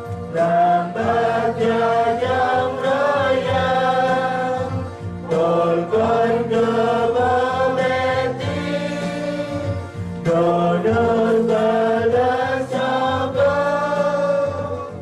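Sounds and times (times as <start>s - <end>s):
choir singing a hymn: 0.0s - 15.0s
electronic keyboard accompaniment: 0.0s - 15.0s.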